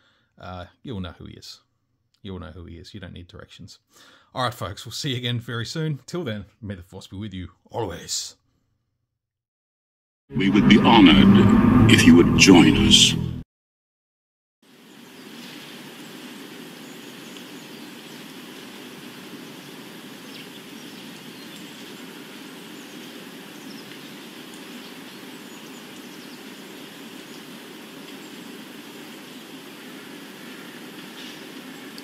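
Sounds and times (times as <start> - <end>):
outdoor night ambience: 14.7 - 32.0.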